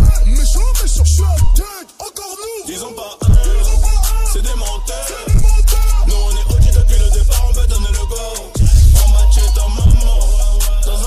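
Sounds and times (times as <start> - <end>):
hip-hop beat with sub-bass: 0.0 - 11.0
man rapping: 0.0 - 11.0.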